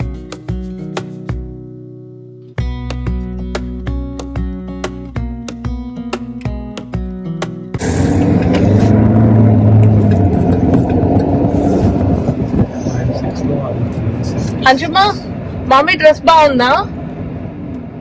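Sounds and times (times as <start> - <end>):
strummed acoustic guitar music: 0.0 - 12.0
car cabin engine and road noise: 2.6 - 18.0
low hum: 7.8 - 14.6.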